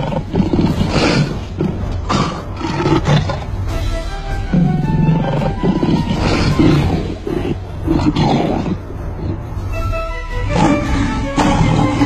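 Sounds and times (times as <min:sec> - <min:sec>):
lions roaring: 0:00.0 - 0:03.6, 0:04.6 - 0:09.5, 0:10.5 - 0:12.0.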